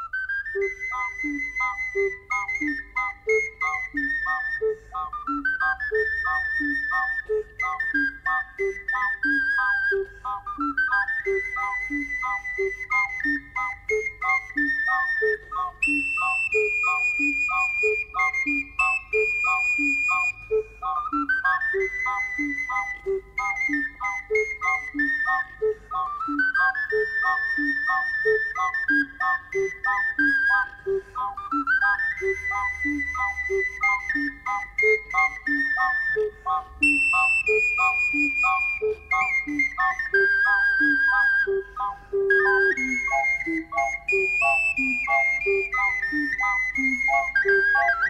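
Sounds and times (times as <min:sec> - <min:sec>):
ocarina melody: 0:00.0 - 0:48.0.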